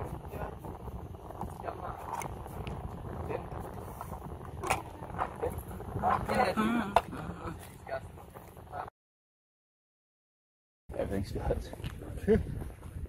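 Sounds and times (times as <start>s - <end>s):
wind rumbling on microphone: 0.0s - 8.9s, 10.9s - 13.0s
voice wavering in pitch: 4.6s - 7.8s.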